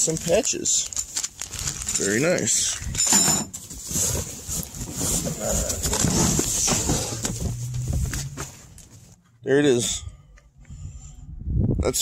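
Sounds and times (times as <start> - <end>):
plastic packaging crinkling: 0.0 - 3.0
low hum: 6.3 - 11.6.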